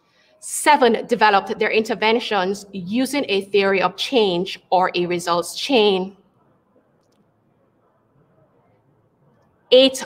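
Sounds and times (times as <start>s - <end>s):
woman speaking: 0.4s - 6.2s, 9.7s - 10.0s.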